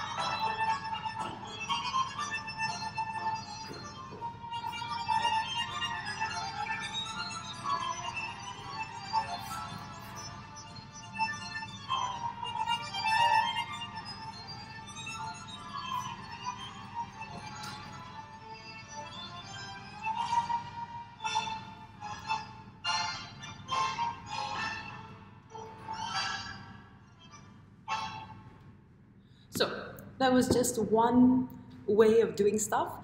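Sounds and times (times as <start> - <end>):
tango music: 0.0 - 28.7.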